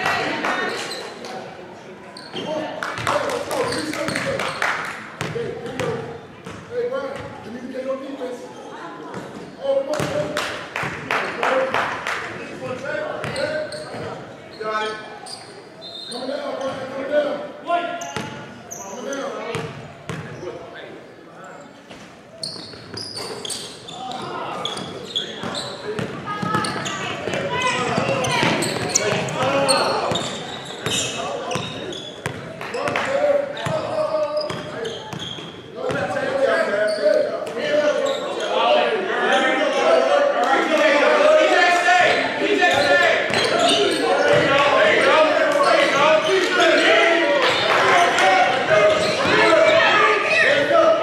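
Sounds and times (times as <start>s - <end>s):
basketball bouncing on hardwood floor: 26.0s - 29.3s
people shouting: 46.2s - 51.0s.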